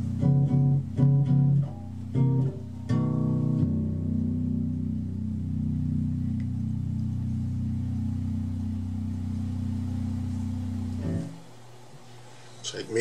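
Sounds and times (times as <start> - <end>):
bass guitar note sustaining: 0.0 - 11.9.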